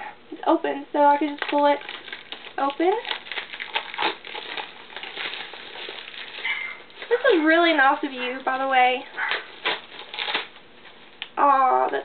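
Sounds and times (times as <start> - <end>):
plastic shrink-wrap crinkling: 1.0 - 11.4.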